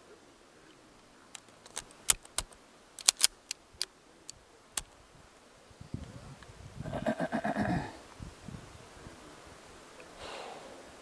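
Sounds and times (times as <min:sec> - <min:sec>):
metallic clicks of handgun loading: 0:01.3 - 0:05.0.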